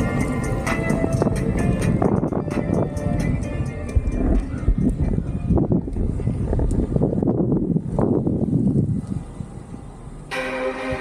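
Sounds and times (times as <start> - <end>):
music with sustained tones: 0.0 - 6.6, 9.8 - 11.0
wind buffeting microphone: 0.0 - 11.0.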